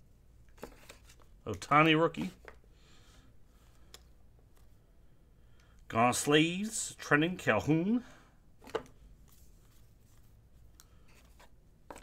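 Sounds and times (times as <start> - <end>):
cards being flipped through: 0.5 - 2.6, 8.6 - 12.0.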